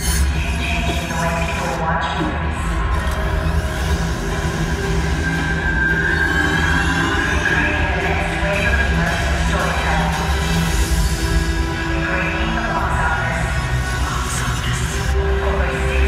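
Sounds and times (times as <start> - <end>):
music: 0.0 - 16.0.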